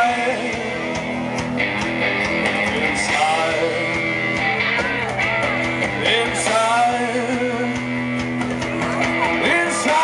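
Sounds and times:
bass guitar: 0.0s - 10.0s
drums: 0.0s - 10.0s
strummed electric guitars: 0.0s - 10.0s.

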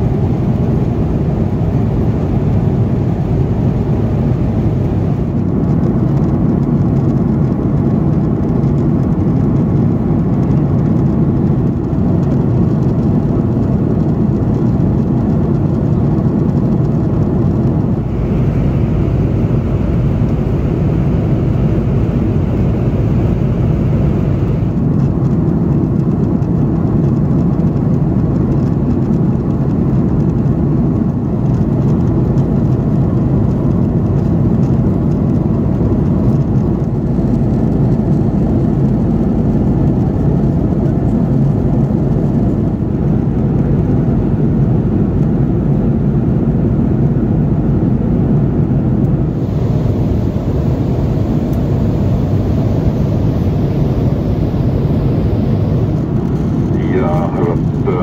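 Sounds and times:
airliner cabin engine rumble: 0.0s - 58.0s.

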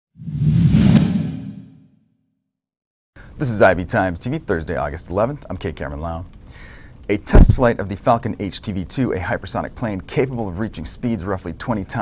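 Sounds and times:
whoosh sound effect: 0.2s - 1.9s.

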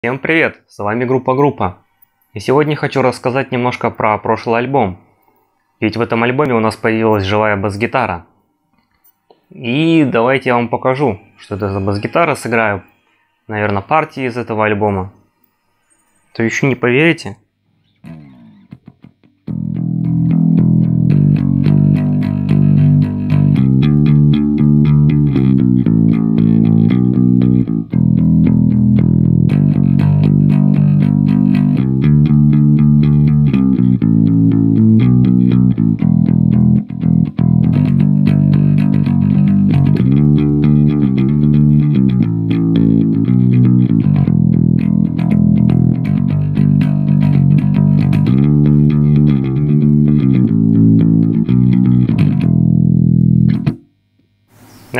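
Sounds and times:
finger-plucked electric bass: 17.8s - 53.9s.

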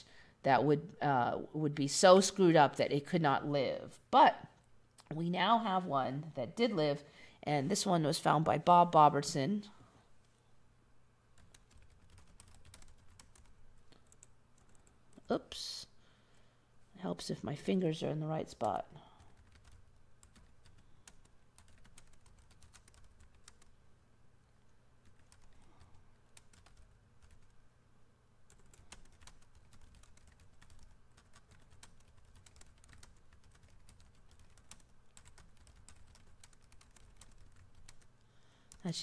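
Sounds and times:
faint computer keyboard typing: 11.4s - 15.3s, 18.5s - 23.8s, 25.0s - 27.6s, 28.5s - 38.8s.

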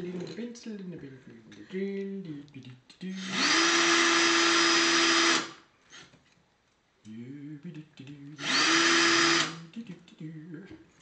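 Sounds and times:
cordless drill motor whining: 3.2s - 5.6s, 8.4s - 9.6s.

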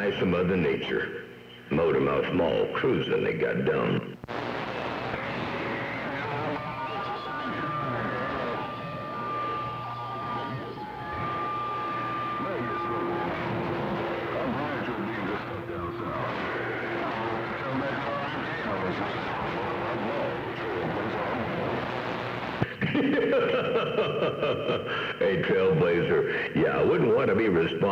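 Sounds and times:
radio static hiss: 0.0s - 23.4s
distant radio voices talking: 5.1s - 22.0s
steady whistle tones: 5.7s - 17.4s.

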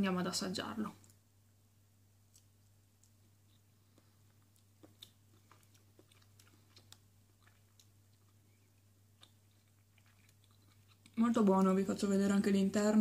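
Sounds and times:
low steady hum: 0.0s - 13.0s
person chewing: 2.2s - 11.2s.

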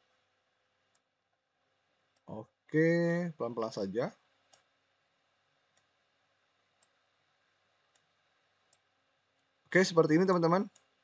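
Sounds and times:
low room hiss: 0.0s - 11.0s
computer mouse clicks: 0.8s - 1.1s, 4.4s - 4.7s, 5.7s - 5.9s, 6.7s - 7.0s, 7.8s - 9.5s, 10.7s - 11.0s.

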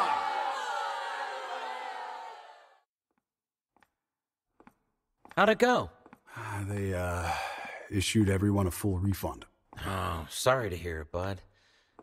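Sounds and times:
crowd shouting: 0.0s - 2.8s.

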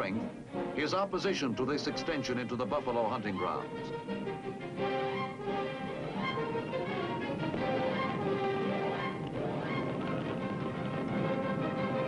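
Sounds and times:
dramatic orchestral music: 0.0s - 12.0s.

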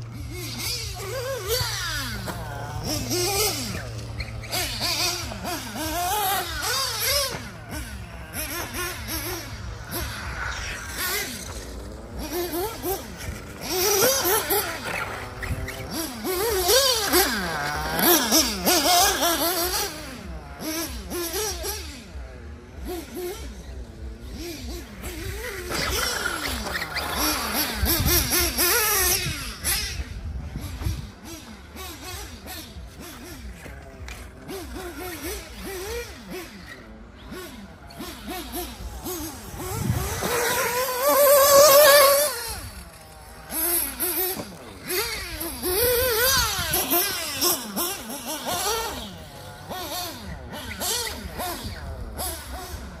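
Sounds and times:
model car engine revving: 0.0s - 53.0s.

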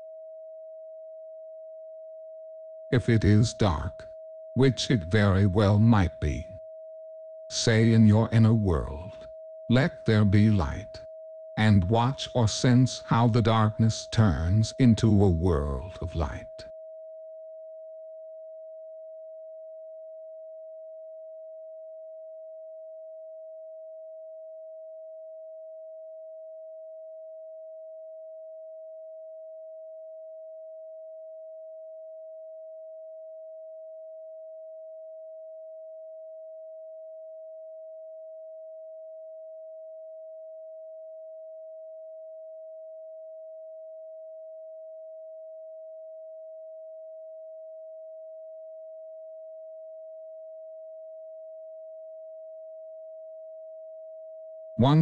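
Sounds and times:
steady sine tone: 0.0s - 55.0s.

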